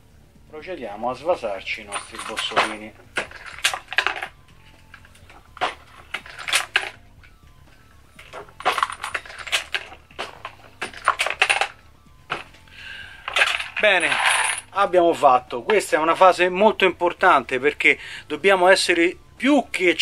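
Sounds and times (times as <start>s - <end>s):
brass cases dropping into plastic bin: 1.9s - 4.4s, 5.5s - 7.0s, 8.2s - 12.5s, 13.2s - 14.7s.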